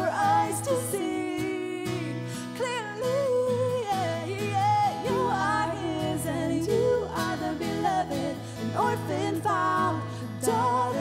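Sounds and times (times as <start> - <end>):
woman singing wordless melody: 0.0 - 11.0.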